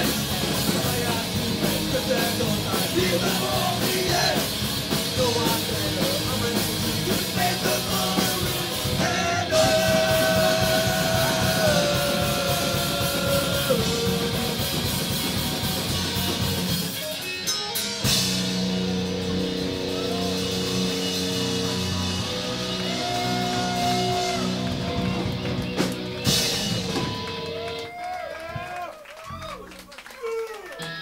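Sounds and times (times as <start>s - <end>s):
punk rock band playing: 0.0s - 27.9s.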